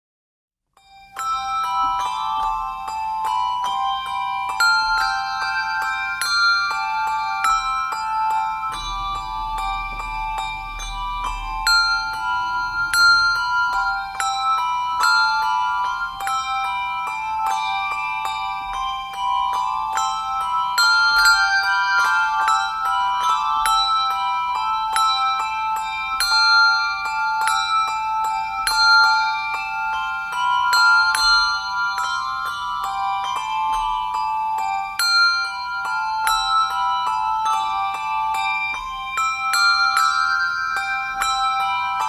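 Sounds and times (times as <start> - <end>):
handbell choir playing hymn: 0.8 - 42.0.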